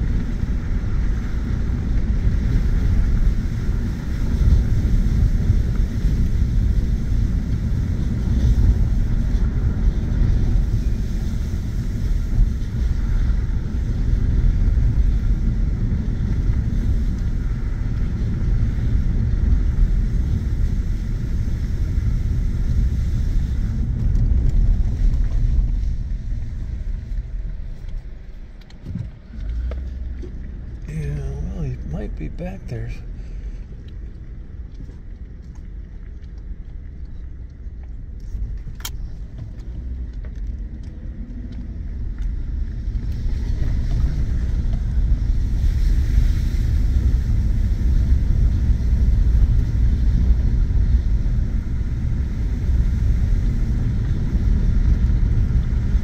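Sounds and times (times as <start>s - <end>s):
tyres on dirt road: 0.0s - 56.0s
truck engine running: 11.8s - 35.4s.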